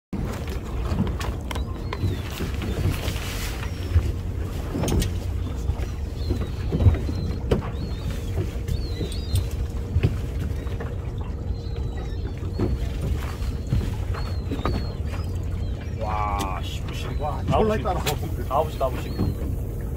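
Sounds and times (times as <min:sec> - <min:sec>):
water rumbling against hull: 0:00.1 - 0:19.9
boat fittings knocking: 0:04.7 - 0:15.5.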